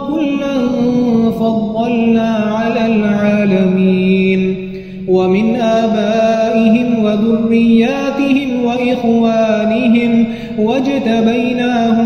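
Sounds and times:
man chanting melodic recitation: 0.0 - 12.0.

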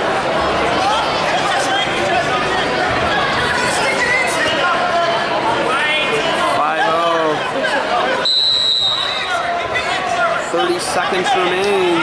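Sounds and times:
whistle blast: 8.2 - 9.4.

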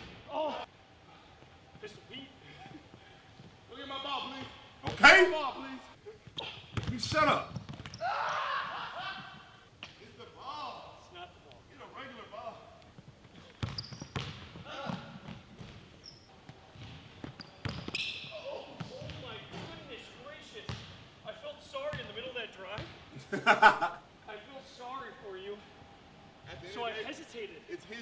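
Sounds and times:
basketball bouncing on hardwood floor: 6.7 - 8.0, 13.5 - 15.9, 16.8 - 18.0.

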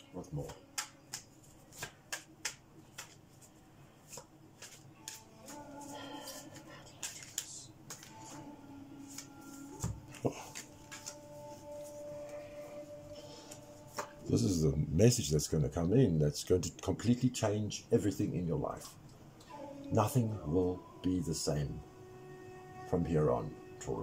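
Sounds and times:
cards shuffling on a desk: 0.4 - 5.6, 6.3 - 8.4, 9.0 - 11.2.

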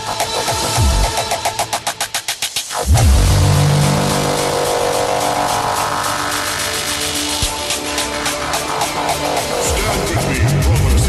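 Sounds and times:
hardcore electronic music: 0.0 - 11.0
distorted low drone: 2.8 - 11.0
heavy kick drum: 7.4 - 7.7.

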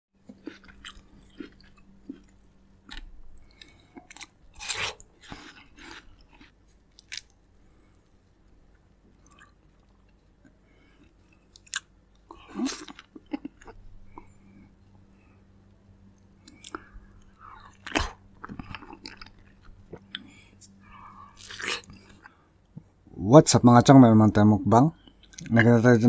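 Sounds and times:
wet fruit bites and chewing: 0.2 - 7.4, 16.2 - 20.8.

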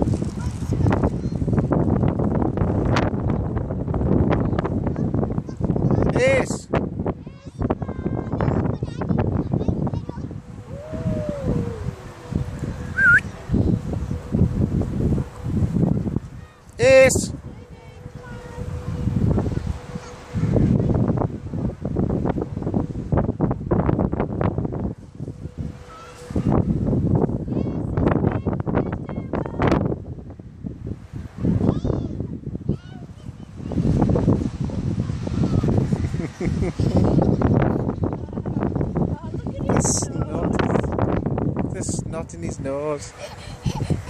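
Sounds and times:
wind blowing across microphone: 0.0 - 44.0.

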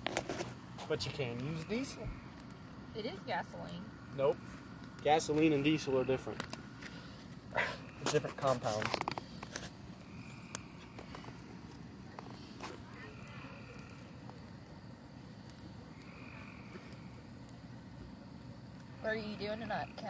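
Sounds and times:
crackling pops from logs: 0.0 - 2.6, 6.3 - 20.0
bonfire hissing: 0.0 - 20.0.

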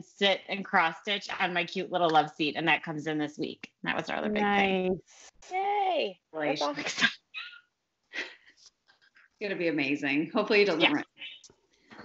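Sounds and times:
people talking: 0.0 - 7.6, 9.4 - 11.4.

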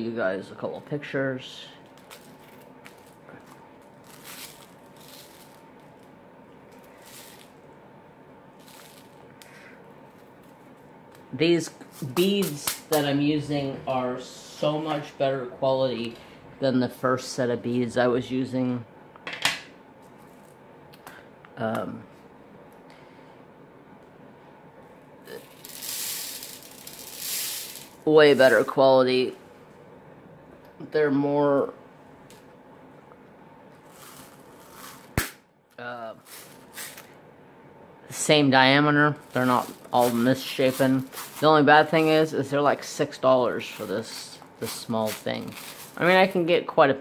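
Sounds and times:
low steady hum: 0.0 - 47.0
plastic packaging crinkling: 1.8 - 7.6, 8.6 - 9.3, 25.3 - 28.7, 39.2 - 41.5, 43.5 - 46.4
beads pouring rattle: 4.0 - 5.6, 6.7 - 7.6, 8.6 - 9.2, 25.3 - 28.7, 33.9 - 35.1, 39.2 - 41.5, 43.6 - 46.1.

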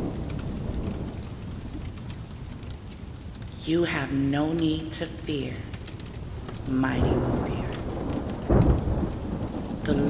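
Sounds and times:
low rumble of thunder: 0.0 - 10.0
steady rain: 0.0 - 10.0.

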